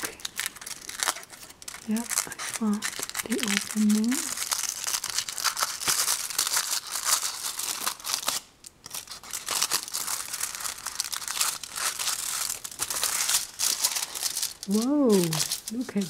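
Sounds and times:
foil tearing: 0:00.0 - 0:16.0
foil wrapper crinkling: 0:00.0 - 0:16.0.

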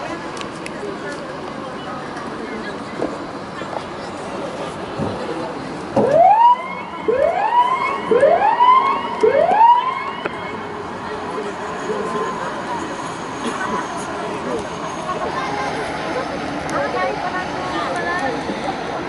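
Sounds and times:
outdoor background noise: 0:00.0 - 0:19.0
siren whooping: 0:06.0 - 0:10.6.

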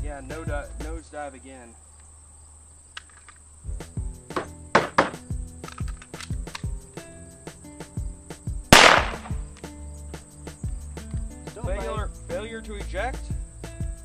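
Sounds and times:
background music with steady beat: 0:00.0 - 0:01.1, 0:03.6 - 0:14.0
pistol shot: 0:04.4 - 0:05.2, 0:08.7 - 0:09.5.

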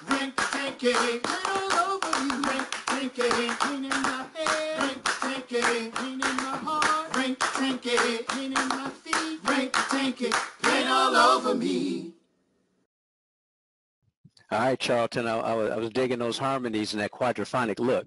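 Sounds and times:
men singing in harmony: 0:00.0 - 0:10.4
rhythmic hand clapping: 0:00.0 - 0:11.4.

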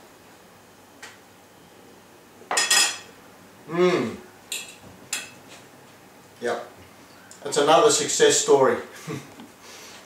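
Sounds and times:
cutlery clinking on a plate: 0:02.5 - 0:03.1.

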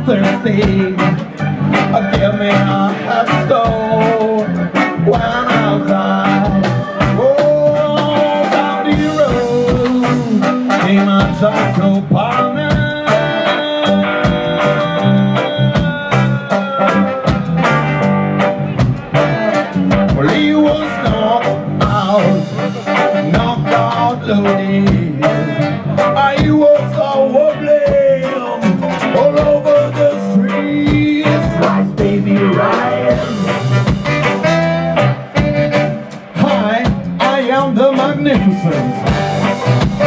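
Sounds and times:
drum kit beat: 0:00.0 - 0:40.0
electric guitar: 0:00.0 - 0:40.0
ska band playing: 0:00.0 - 0:40.0.

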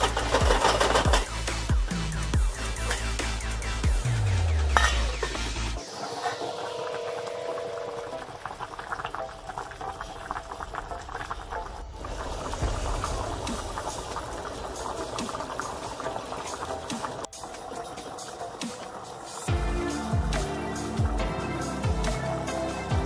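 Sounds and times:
stew boiling with bursting bubbles: 0:00.0 - 0:21.2.

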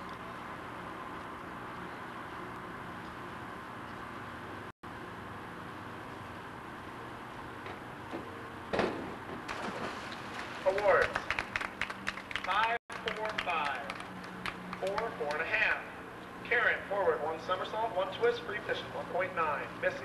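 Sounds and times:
steady low hum: 0:00.0 - 0:20.0
people talking: 0:10.6 - 0:11.3, 0:12.4 - 0:14.0, 0:14.8 - 0:15.8, 0:16.5 - 0:20.0.

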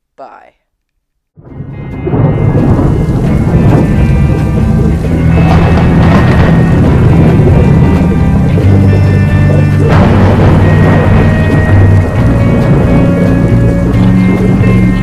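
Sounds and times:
music with sustained notes: 0:01.4 - 0:15.0
thunder rumbling: 0:01.4 - 0:15.0
rain hissing: 0:01.5 - 0:15.0.

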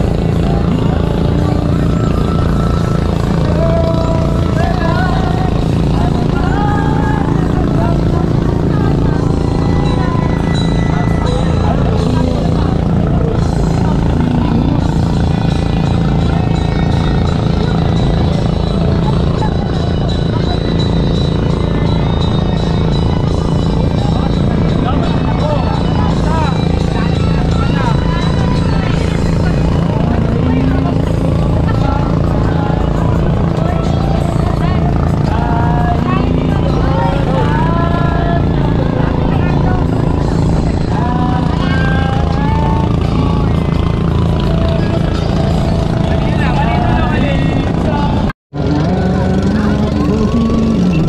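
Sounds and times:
boat engine running: 0:00.0 - 0:51.0
people's voices: 0:00.0 - 0:51.0.

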